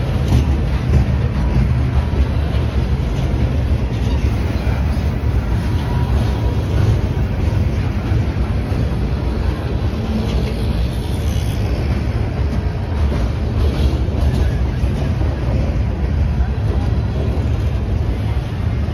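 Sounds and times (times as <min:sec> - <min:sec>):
freight car wheels rumbling on rail: 0:00.0 - 0:18.9.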